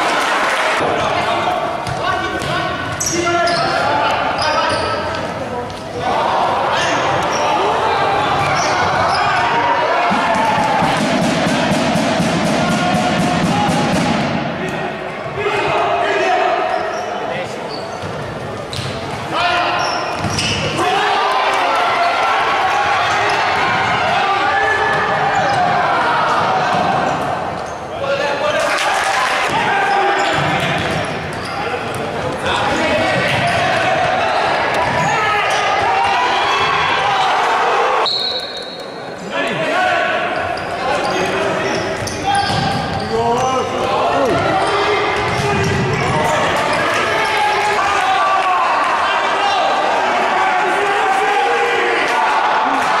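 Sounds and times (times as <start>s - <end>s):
echoing voices: 0.0s - 53.0s
short high whistle: 38.0s - 38.8s.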